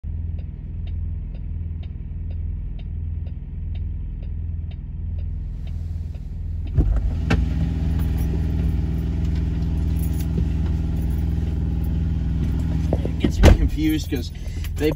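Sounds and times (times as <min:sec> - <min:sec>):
steady clicking: 0:00.1 - 0:06.8
truck engine idling: 0:00.1 - 0:14.9.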